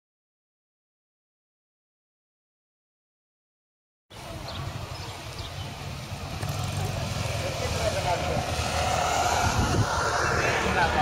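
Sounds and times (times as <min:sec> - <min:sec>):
people's voices: 0:04.1 - 0:11.0
road traffic: 0:04.1 - 0:11.0.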